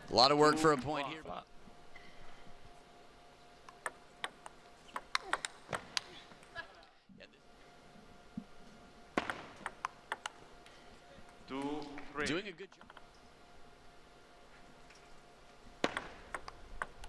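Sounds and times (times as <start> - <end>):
table tennis ball clicks: 3.6 - 6.1, 9.2 - 10.4, 15.8 - 17.0.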